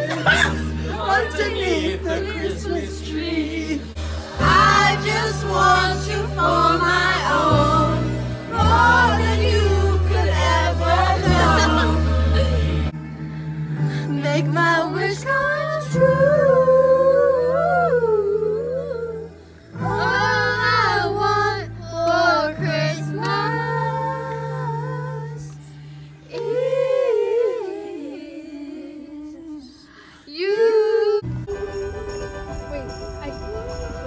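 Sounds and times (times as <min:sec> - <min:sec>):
women singing: 0:00.0 - 0:13.0, 0:13.9 - 0:31.3
low bass notes: 0:00.0 - 0:14.4.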